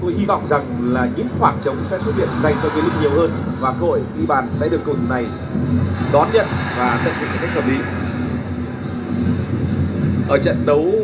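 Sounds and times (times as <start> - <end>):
steady rumbling noise: 0.0 - 11.0.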